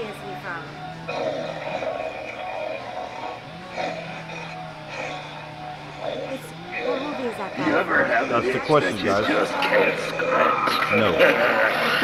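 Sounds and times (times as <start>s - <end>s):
steady low hum: 0.0s - 12.0s
recorded music from a speaker: 9.2s - 12.0s.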